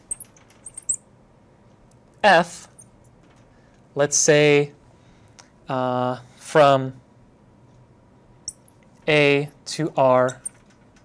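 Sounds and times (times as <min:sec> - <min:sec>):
marker squeaking on glass: 0:00.0 - 0:01.0, 0:10.3 - 0:10.6.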